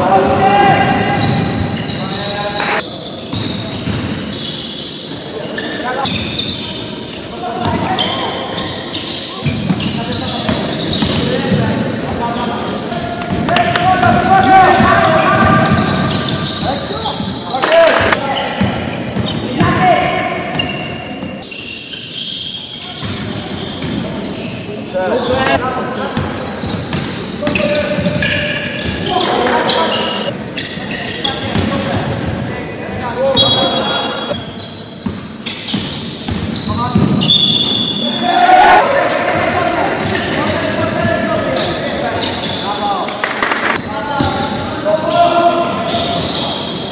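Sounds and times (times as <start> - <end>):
players calling out: 0.0 - 35.1, 36.6 - 46.9
basketball bouncing on court: 0.2 - 4.4, 9.4 - 11.8, 13.0 - 21.4, 25.2 - 29.1, 35.0 - 37.8.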